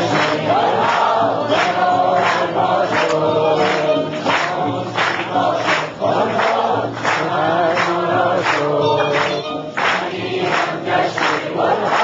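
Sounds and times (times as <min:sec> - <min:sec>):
choir singing: 0:00.0 - 0:12.0
hands clapping in unison: 0:00.0 - 0:12.0.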